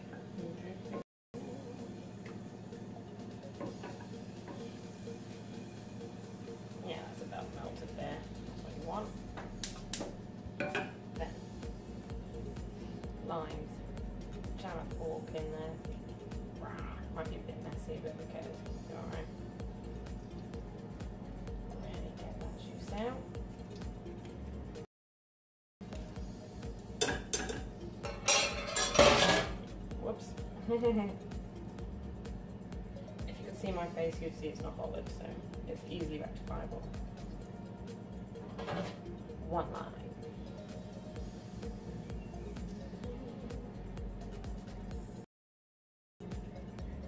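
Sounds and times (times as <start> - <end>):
fork clinking against saucepan: 27.0 - 29.4.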